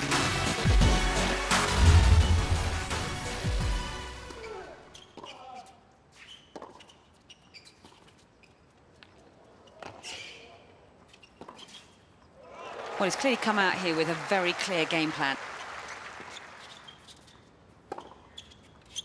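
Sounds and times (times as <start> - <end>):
music sting: 1.5 - 3.8.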